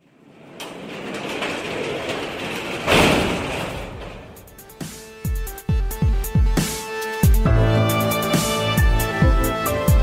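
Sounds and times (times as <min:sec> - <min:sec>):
rumbling rattling noise: 0:00.0 - 0:06.6.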